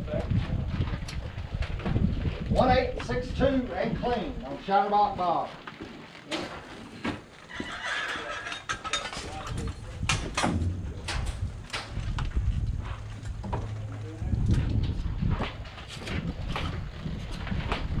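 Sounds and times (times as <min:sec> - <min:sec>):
rough low rumble: 0:08.7 - 0:18.0
steady low hum: 0:09.4 - 0:18.0.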